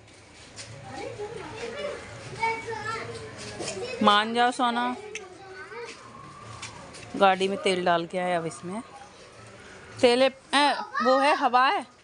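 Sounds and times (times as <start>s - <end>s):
children's voices and chatter: 0.1s - 12.0s.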